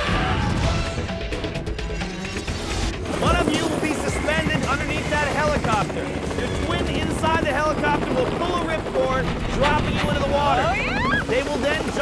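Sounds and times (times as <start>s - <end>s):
helicopter rotor and engine: 0.9s - 12.0s.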